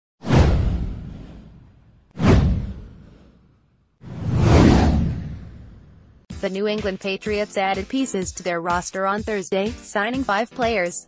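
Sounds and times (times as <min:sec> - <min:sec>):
low whoosh sweeping down: 0:04.0 - 0:06.2.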